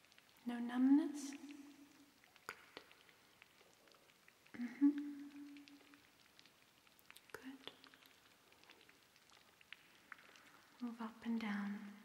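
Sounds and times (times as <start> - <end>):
fingertips crackling on skin: 1.3 - 10.8.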